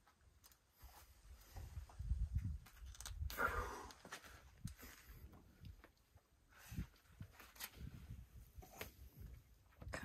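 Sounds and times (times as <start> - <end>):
climber exhaling with effort: 3.3 - 5.2.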